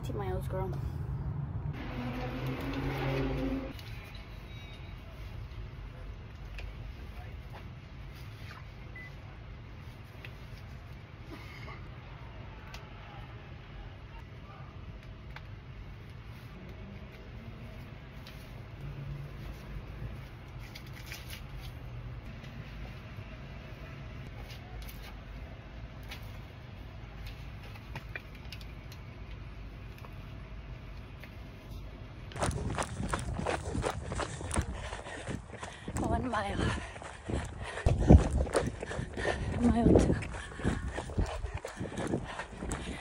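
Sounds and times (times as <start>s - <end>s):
low outdoor rumble: 21.6s - 43.0s
rustling of vest straps: 31.2s - 43.0s
running footsteps thuds: 32.3s - 43.0s.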